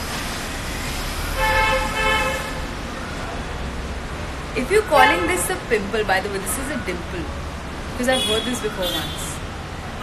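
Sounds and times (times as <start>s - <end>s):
street traffic: 0.0s - 10.0s
vehicle horn: 1.4s - 2.6s.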